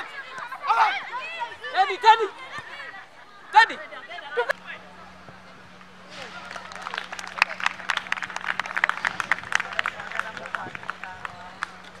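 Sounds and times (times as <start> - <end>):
faint steady hum: 0.0 - 12.0
spectators clapping: 6.2 - 12.0.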